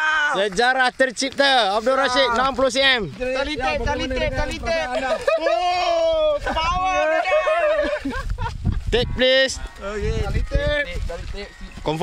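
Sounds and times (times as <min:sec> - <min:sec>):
man shouting with joy: 0:00.0 - 0:00.4, 0:01.9 - 0:02.6, 0:03.5 - 0:08.2
excited men's voices: 0:00.0 - 0:12.0.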